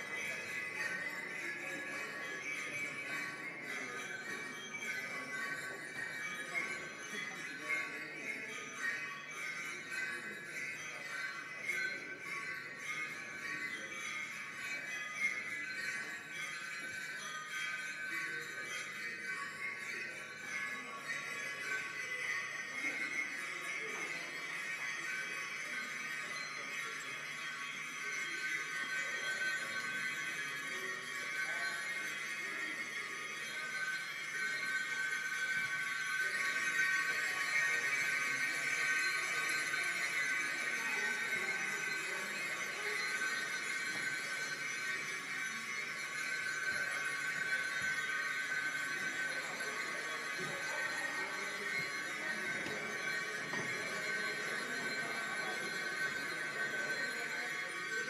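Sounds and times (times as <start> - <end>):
shimmering high ringing percussion: 0.0 - 58.0.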